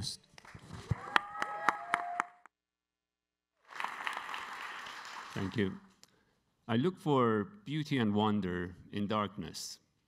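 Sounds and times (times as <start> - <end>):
audience applause: 0.9 - 2.4, 3.6 - 5.8.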